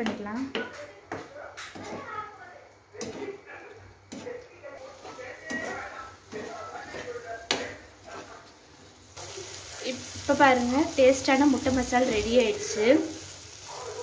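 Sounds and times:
spatula stirring in frying pan: 0.5s - 14.0s
frying sizzle: 4.1s - 14.0s.

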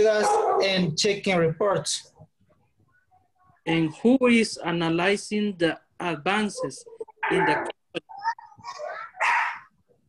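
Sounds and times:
dog barking: 0.2s - 0.8s, 9.2s - 9.7s.

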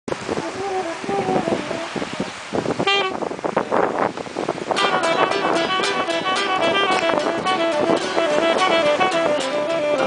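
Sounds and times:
bright saxophone note: 2.8s - 3.3s, 4.7s - 10.0s
acoustic guitar strumming: 4.7s - 10.0s.

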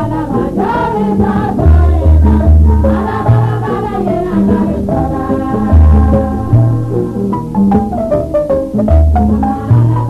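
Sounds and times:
voices singing together: 0.0s - 7.4s, 9.3s - 10.0s
deep bass notes: 1.2s - 10.0s.

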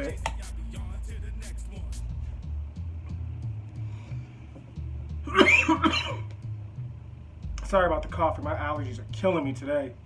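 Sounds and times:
hip-hop music with bass beat: 0.0s - 9.8s
man coughing loudly: 5.2s - 6.3s.

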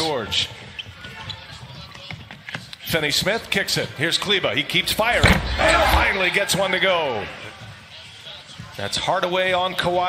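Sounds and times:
arena background sound: 4.7s - 7.4s.

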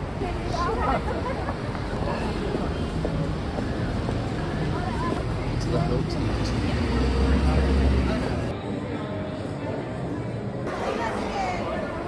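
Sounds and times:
people's voices: 0.0s - 12.0s
street noise: 0.0s - 12.0s.

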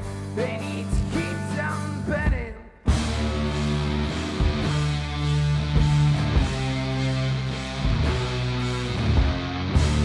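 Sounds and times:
drums and cymbals: 0.0s - 10.0s
electric guitar chords: 0.0s - 10.0s.

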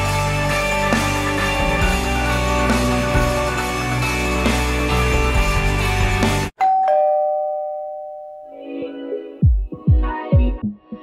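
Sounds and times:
music: 0.0s - 6.5s, 8.6s - 11.0s
two-note doorbell chime: 6.6s - 8.8s.

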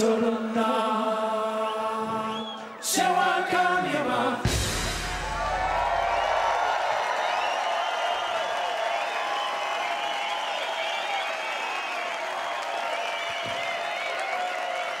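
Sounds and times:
whistles from crowd: 1.5s - 3.0s, 5.0s - 15.0s
audience applauding and cheering: 4.4s - 15.0s
people shouting: 5.0s - 7.2s.

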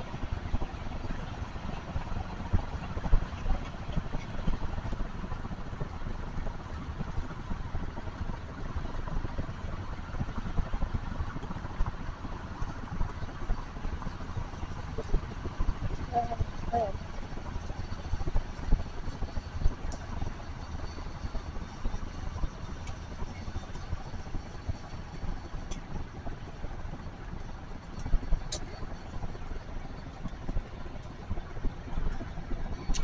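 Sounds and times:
car interior road rumble: 11.2s - 33.0s.

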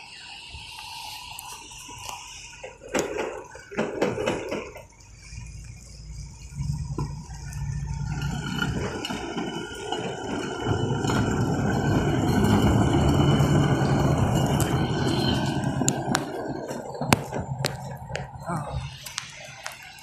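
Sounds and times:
pickup truck engine on rail wheels: 0.0s - 20.0s
thin steady squeal: 0.0s - 20.0s.

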